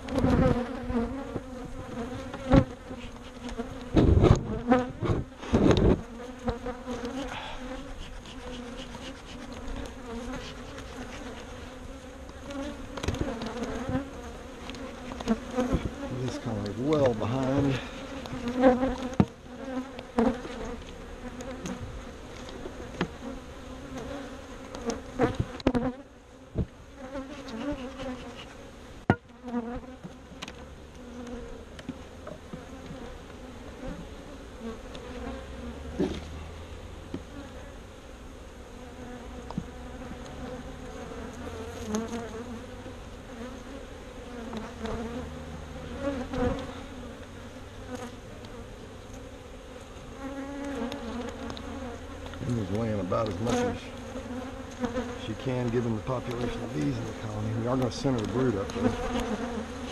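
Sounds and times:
honeybees buzzing: 0:00.0 - 0:59.9
knocks of hive parts: 0:19.1 - 0:19.4.

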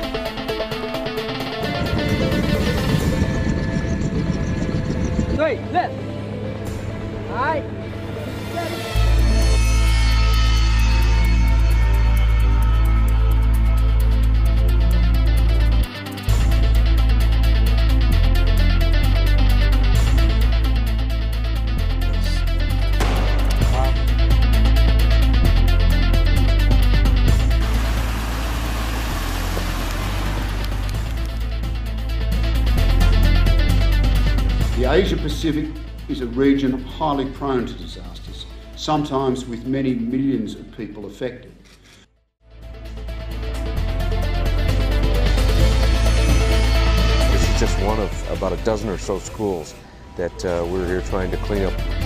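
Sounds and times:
background music with low bass: 0:00.0 - 0:41.7, 0:42.4 - 0:52.0
helicopter rotor rumbling: 0:01.0 - 0:07.8.

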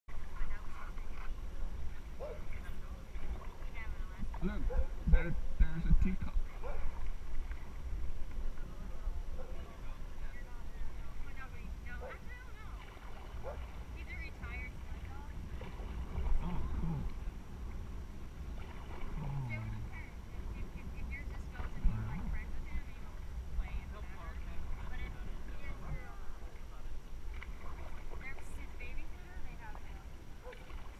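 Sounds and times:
steady low rumble: 0:00.1 - 0:30.5.

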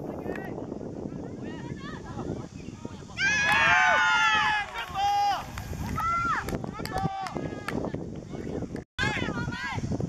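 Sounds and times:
outdoor noise: 0:00.0 - 0:10.0
boys shouting: 0:03.1 - 0:07.7.

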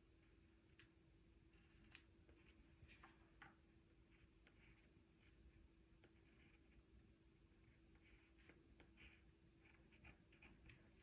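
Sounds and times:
faint steady hum: 0:00.0 - 0:11.0
pencil scratching on paper: 0:04.0 - 0:11.0.

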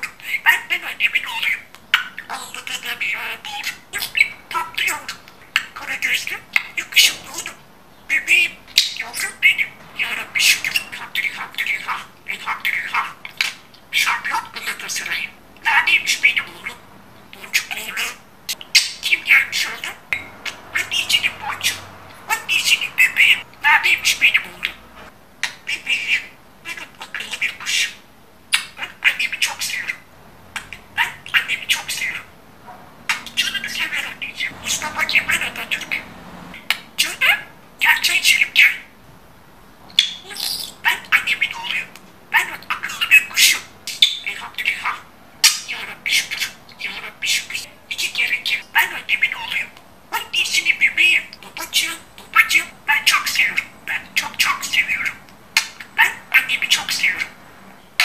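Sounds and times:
budgerigar warbling and chattering: 0:00.0 - 0:30.0, 0:30.6 - 0:32.3, 0:33.1 - 0:38.9, 0:39.9 - 0:57.4.

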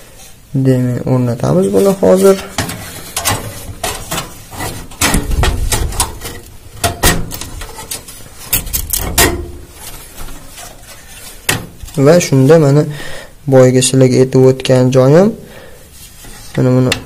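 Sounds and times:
clicks knocks and scraping: 0:01.8 - 0:12.1.

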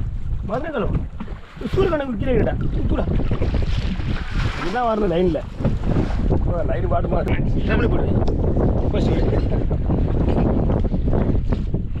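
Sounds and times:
sea washing around boat: 0:00.0 - 0:07.9
wind buffeting microphone: 0:00.0 - 0:12.0.

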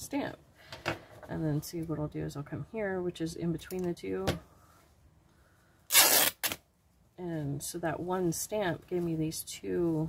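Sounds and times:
fabric ripping: 0:05.9 - 0:06.6.

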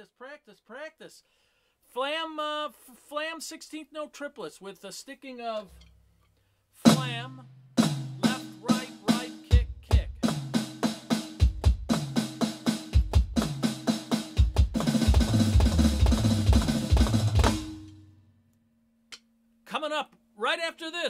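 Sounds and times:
electronic drum fill: 0:10.2 - 0:18.0.

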